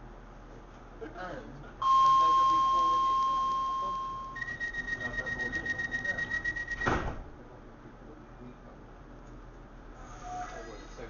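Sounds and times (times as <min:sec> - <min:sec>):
door warning beeps: 0:01.8 - 0:07.2
doors shutting thud: 0:06.7 - 0:07.3.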